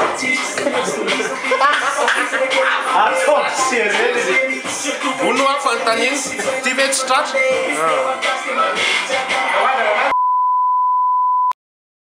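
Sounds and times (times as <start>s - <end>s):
hip-hop music: 0.0s - 10.2s.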